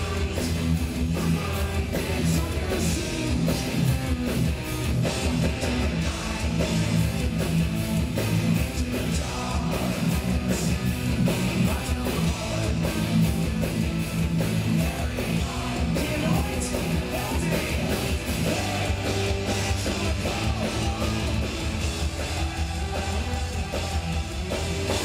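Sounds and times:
heavy metal band playing live: 0:00.0 - 0:25.0.

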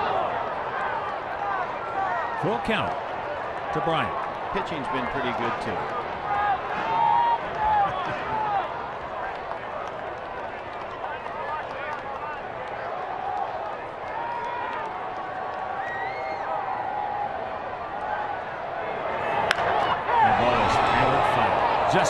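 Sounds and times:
crowd chatter and calls: 0:00.0 - 0:22.0
bat cracking on ball: 0:19.4 - 0:19.7.

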